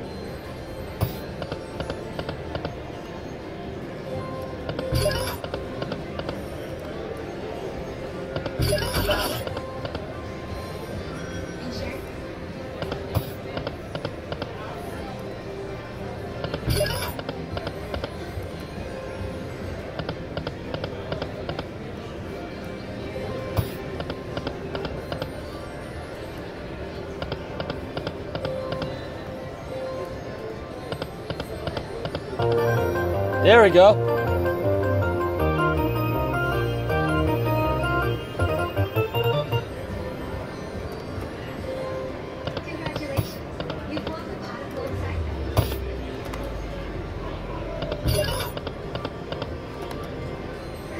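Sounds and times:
casino background hum: 0.0 - 50.9
slot machine music and effects: 4.5 - 5.7, 8.6 - 9.5, 32.4 - 40.6
casino noise: 30.9 - 40.2, 45.4 - 46.4.

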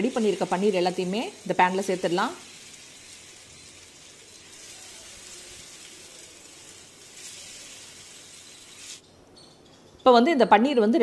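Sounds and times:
food sizzling in hot oil: 0.0 - 9.0.

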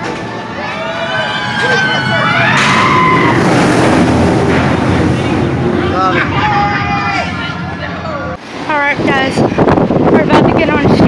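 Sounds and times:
roller coaster rushing past: 0.0 - 10.5
riders screaming: 0.6 - 3.8.

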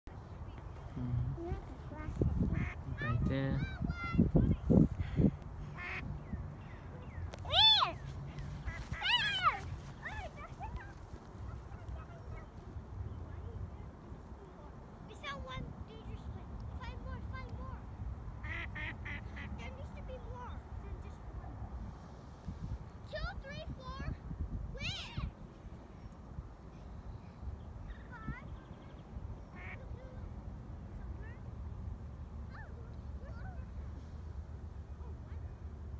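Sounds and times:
low rumbling: 0.8 - 5.3.

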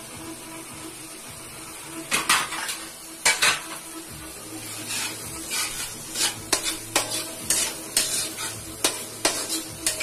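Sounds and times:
metal fork scraping a wok: 4.6 - 10.0.

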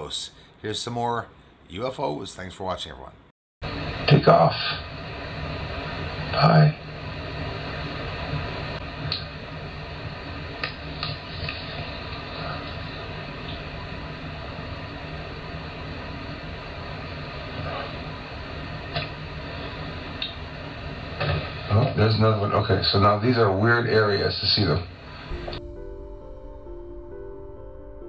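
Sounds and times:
steady background hiss: 0.0 - 25.6.

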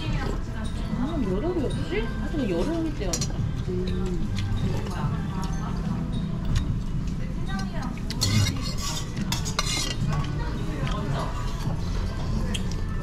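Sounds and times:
metal spoon scraping brass bowl: 8.1 - 10.2.

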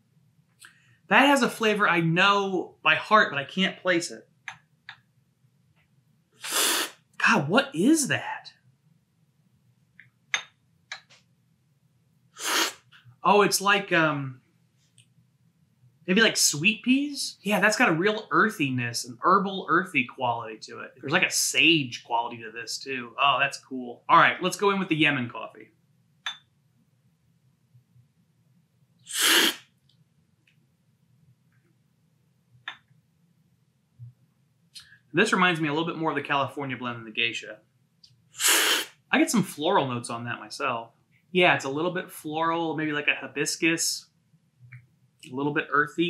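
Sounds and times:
loud coffee slurp from spoon: 6.4 - 7.0, 12.4 - 12.9, 29.1 - 29.6, 38.4 - 38.9.

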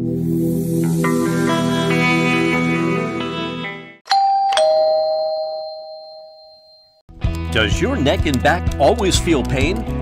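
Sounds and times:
two-note doorbell chime: 4.1 - 7.0.

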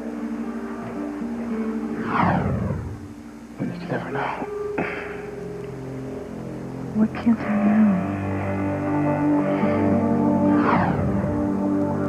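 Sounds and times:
background music of low sustained notes: 0.0 - 12.0.

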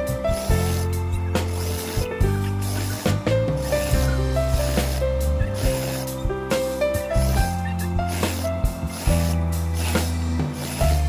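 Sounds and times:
background music with sustained notes: 0.0 - 11.0.

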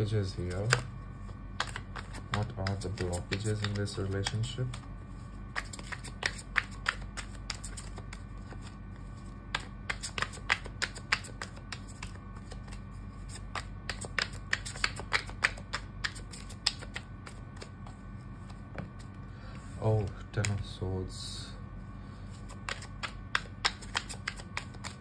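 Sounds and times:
cards being shuffled: 0.4 - 19.2, 22.3 - 25.0.

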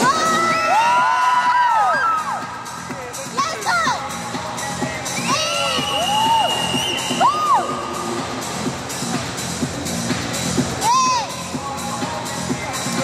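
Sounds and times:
whoops: 0.0 - 2.5, 5.2 - 7.8
music with steady beat: 0.0 - 13.0.

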